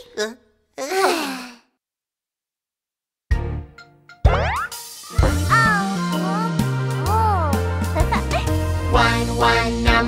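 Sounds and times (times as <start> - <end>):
bouncy children's song music: 3.3 - 10.0.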